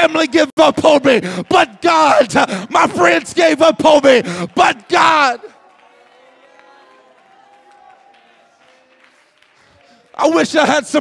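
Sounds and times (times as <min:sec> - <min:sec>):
people clapping: 0:00.7 - 0:11.0.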